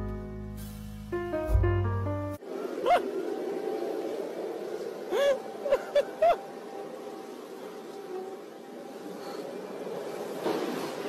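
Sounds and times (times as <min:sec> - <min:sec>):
melody over low bass: 0:00.0 - 0:02.4
steady rumbling hum: 0:00.3 - 0:09.6
rising and falling squeal: 0:02.4 - 0:11.0.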